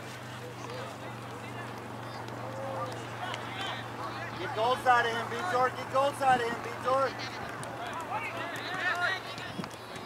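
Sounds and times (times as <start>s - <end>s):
distant voices shouting: 0.4s - 10.0s.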